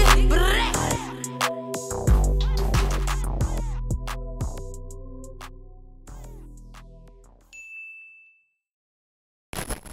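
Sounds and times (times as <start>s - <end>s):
rap music: 0.0s - 7.5s.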